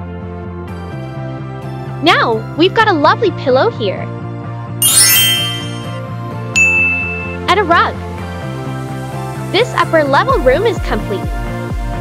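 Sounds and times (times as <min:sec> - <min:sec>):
high ding: 0:04.8 - 0:06.0, 0:06.6 - 0:07.5
twinkling chime effect: 0:04.8 - 0:06.0, 0:06.6 - 0:07.5.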